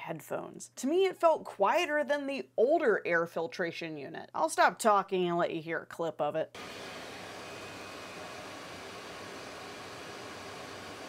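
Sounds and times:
extraction fan rushing: 0:06.6 - 0:11.0.

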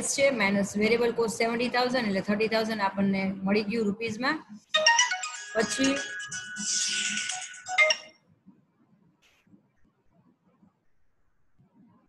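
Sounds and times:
phone ringtone tune: 0:04.7 - 0:08.1.

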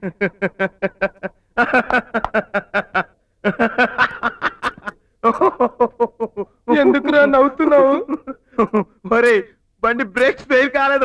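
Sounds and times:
man laughing loudly: 0:00.0 - 0:09.0.

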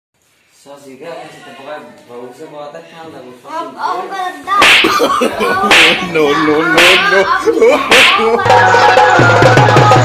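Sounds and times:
cloth slaps: 0:04.6 - 0:06.0, 0:07.9 - 0:08.3.

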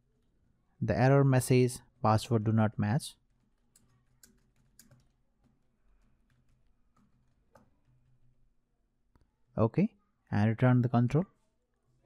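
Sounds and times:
keyboard keystrokes: 0:03.7 - 0:05.1.

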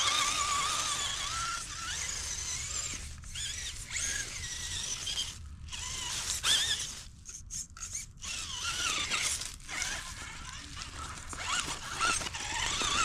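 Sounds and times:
truck crawling over leaves: 0:00.0 - 0:07.1, 0:08.2 - 0:13.0
electric motor and gears whining: 0:00.0 - 0:13.0.

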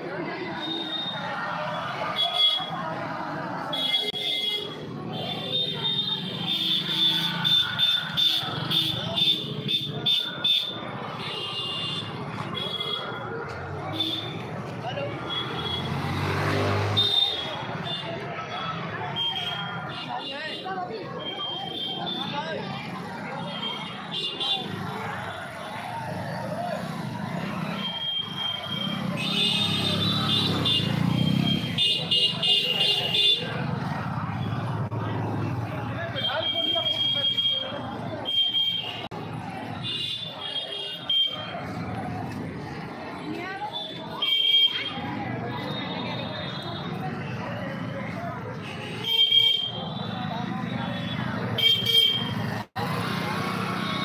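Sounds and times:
crowd voices: 0:00.0 - 0:54.0
motorcycle passing: 0:14.4 - 0:17.3, 0:24.6 - 0:36.2, 0:52.2 - 0:54.0.

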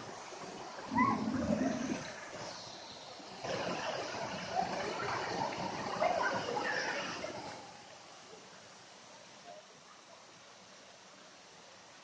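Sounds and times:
water pouring into pool: 0:00.0 - 0:08.0.

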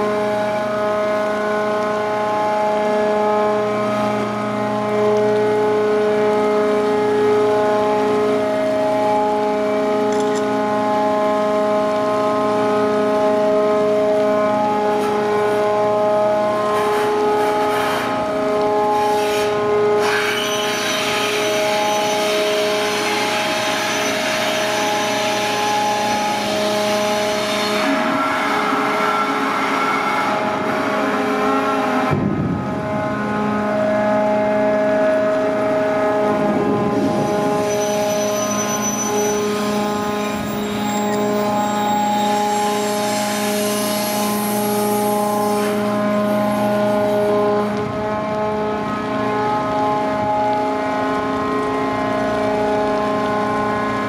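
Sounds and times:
crane machinery whining: 0:00.0 - 0:54.0.

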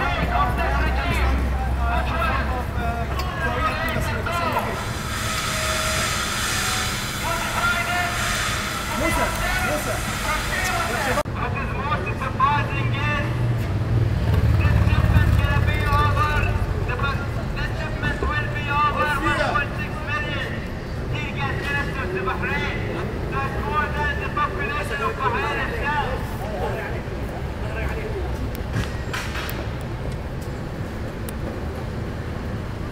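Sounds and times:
men talking over one another: 0:00.0 - 0:04.8.

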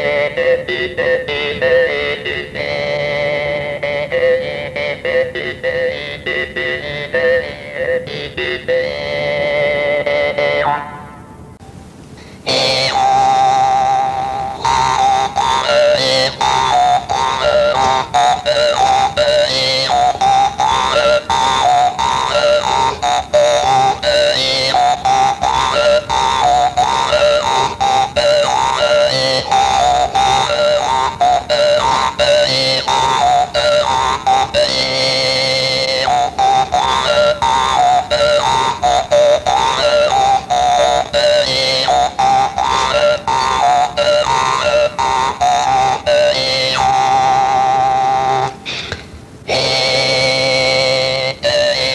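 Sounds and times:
jaw harp over low drone: 0:00.0 - 0:51.9.

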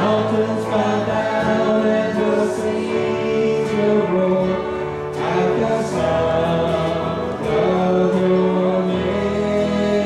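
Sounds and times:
person singing: 0:00.0 - 0:10.0
worship band playing: 0:00.0 - 0:10.0.

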